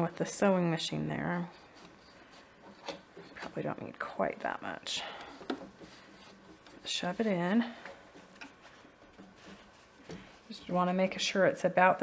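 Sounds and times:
soft rustling of stuffing and fabric: 0.0s - 12.0s.

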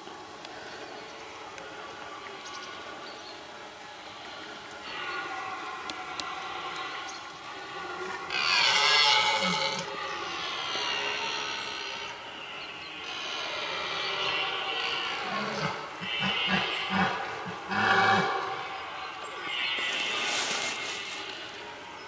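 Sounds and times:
deer stag roaring: 7.8s - 12.0s, 13.0s - 18.6s.

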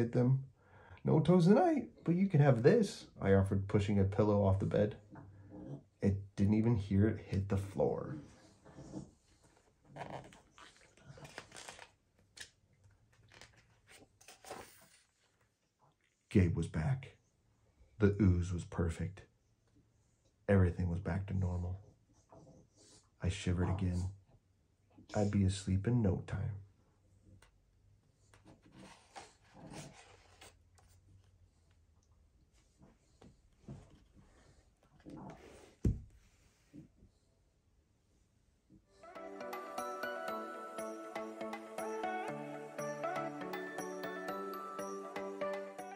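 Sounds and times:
paper page rustling and turning: 10.0s - 15.5s, 28.4s - 31.3s.

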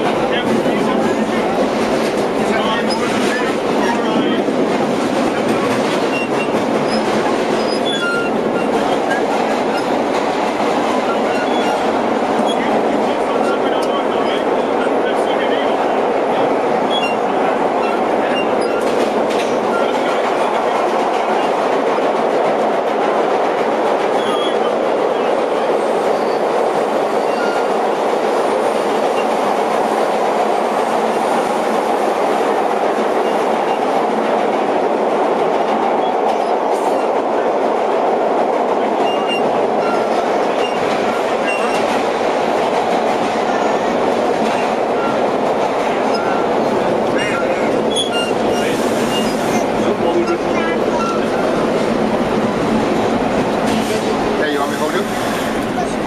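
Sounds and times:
subway train wheels on rails: 0.0s - 56.0s.

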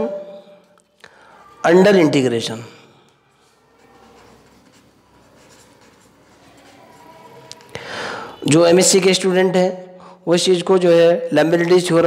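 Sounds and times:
pen scratching on paper: 3.7s - 7.4s.

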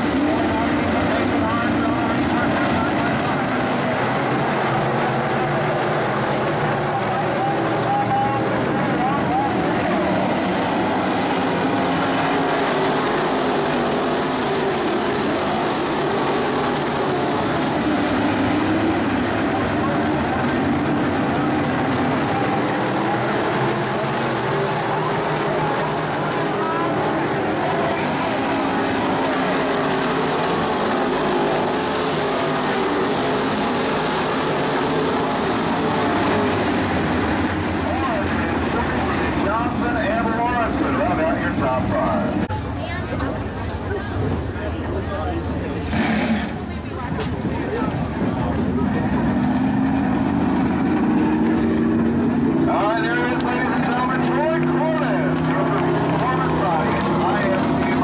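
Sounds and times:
race car engines running: 0.0s - 58.0s.

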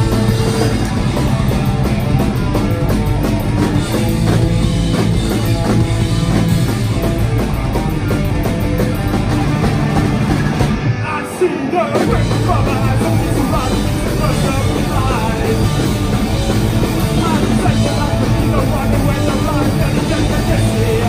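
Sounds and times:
drum kit with cymbals: 0.0s - 10.9s, 12.0s - 21.0s
bass guitar: 0.0s - 21.0s
electric guitars: 0.0s - 21.0s.

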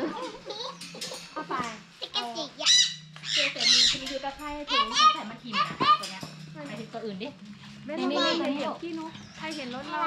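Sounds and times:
macaw squawking: 2.1s - 6.1s.

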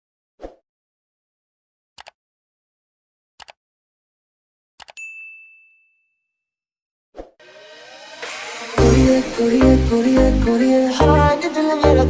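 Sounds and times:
bell-like ding: 5.0s - 6.5s
electronic dance music: 7.4s - 12.0s.

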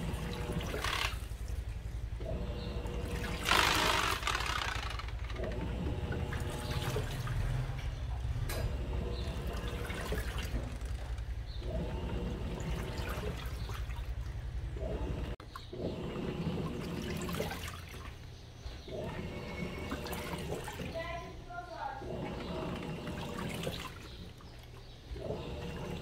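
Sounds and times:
washing machine motor humming: 0.0s - 26.0s
water sloshing in tub: 0.0s - 26.0s.

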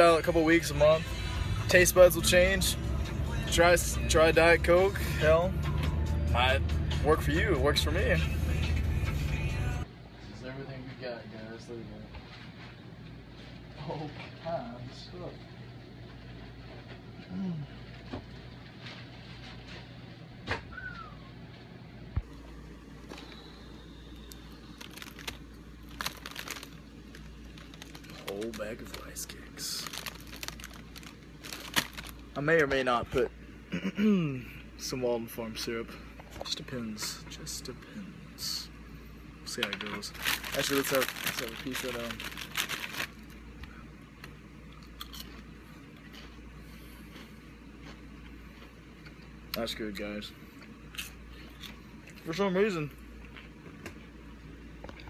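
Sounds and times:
low steady hum: 0.0s - 55.0s
plastic bags crinkling: 24.2s - 32.7s, 39.6s - 43.4s.

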